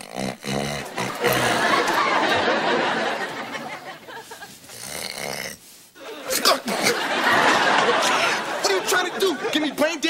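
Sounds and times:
man snoring: 0:00.0 - 0:01.9, 0:04.7 - 0:05.7.

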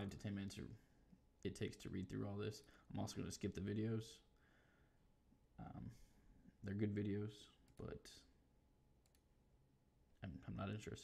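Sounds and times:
computer mouse clicks: 0:09.0 - 0:09.3.

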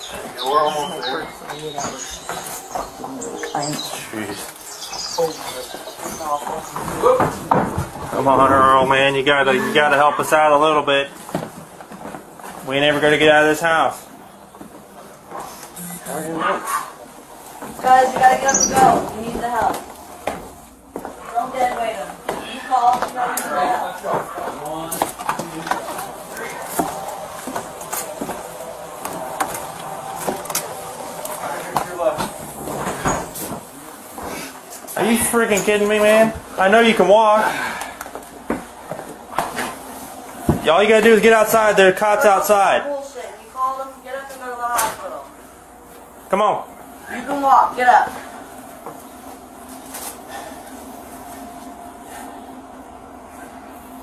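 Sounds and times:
muffled voices: 0:00.0 - 0:54.0
steady low hum: 0:00.0 - 0:54.0.

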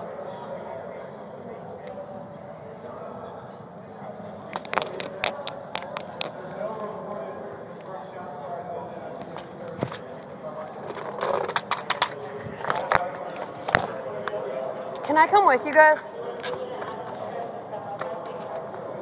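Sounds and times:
camera jostling against gear: 0:04.5 - 0:06.6, 0:09.2 - 0:14.0
indistinct voices: 0:09.1 - 0:19.0.

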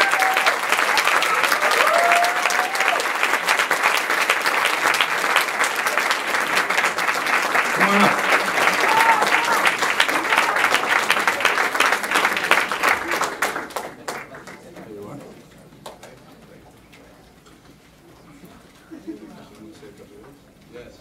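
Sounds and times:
audience applauding: 0:00.0 - 0:15.2
voices calling out: 0:07.7 - 0:09.7.

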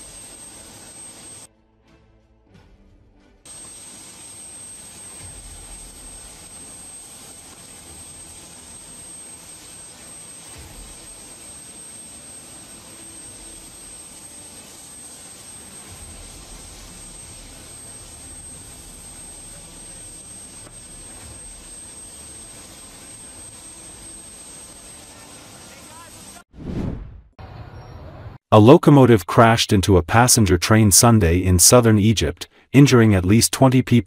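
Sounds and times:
jet engine hiss and whine: 0:00.0 - 0:01.5, 0:03.5 - 0:26.5.

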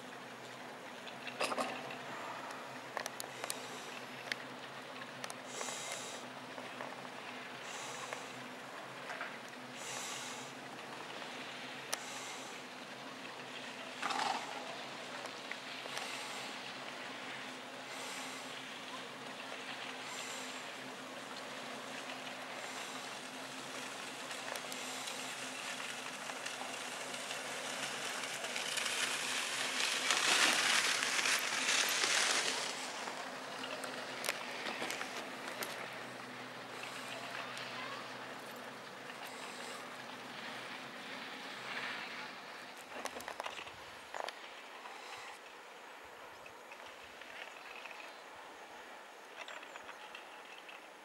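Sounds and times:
faint steady hum: 0:00.0 - 0:51.0.

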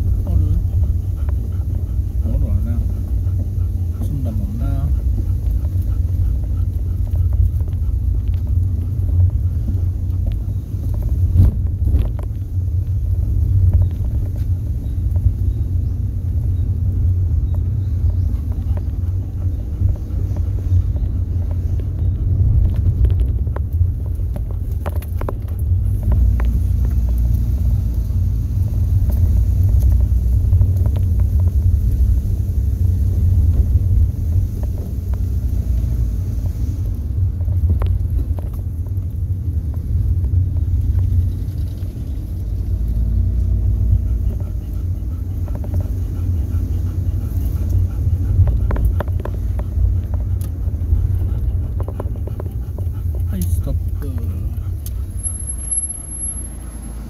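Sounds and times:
car engine and road noise: 0:00.0 - 0:57.0.

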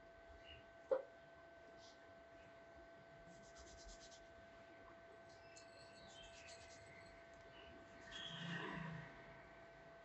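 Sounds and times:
faint steady hum: 0:00.0 - 0:08.3
fingers rubbing through hair: 0:03.3 - 0:04.3.

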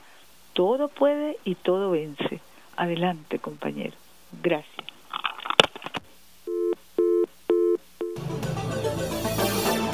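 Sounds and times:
telephone busy tone: 0:06.5 - 0:08.2.

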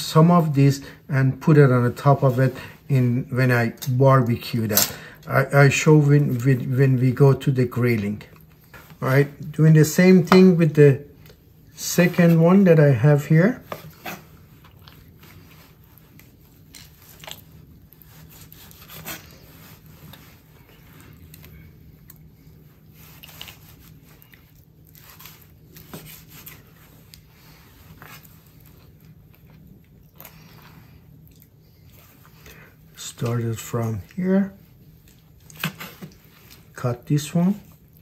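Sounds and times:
faint low hum: 0:00.0 - 0:38.0
knife slicing meat: 0:18.0 - 0:19.9.

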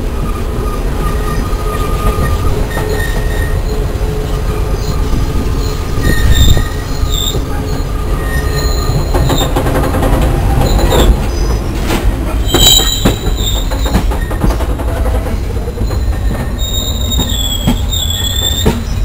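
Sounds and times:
train wheels rumbling on rails: 0:00.0 - 0:19.0
high wheel squeals: 0:00.2 - 0:09.6, 0:10.4 - 0:11.8, 0:12.4 - 0:14.5, 0:15.3 - 0:19.0
wheels clicking over rail joints: 0:05.1 - 0:19.0.

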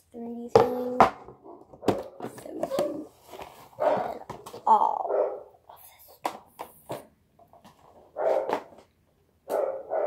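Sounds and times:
dog barking: 0:03.8 - 0:04.2, 0:05.1 - 0:05.5, 0:08.2 - 0:08.7, 0:09.5 - 0:10.0.

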